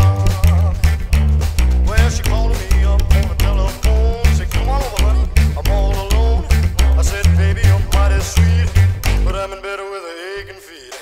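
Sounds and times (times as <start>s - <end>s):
slapped upright bass: 0.0s - 9.6s
band recording: 0.0s - 11.0s.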